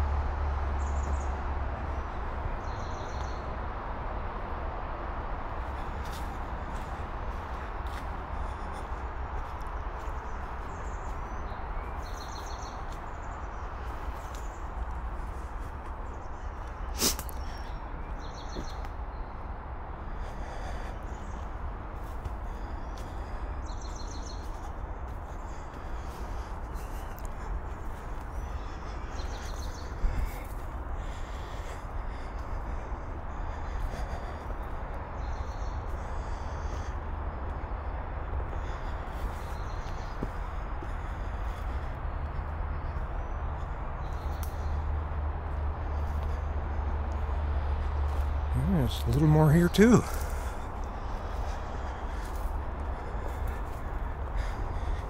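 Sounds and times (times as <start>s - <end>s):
steady outdoor noise: 0.0s - 55.0s
birds calling: 0.7s - 3.6s, 5.6s - 55.0s.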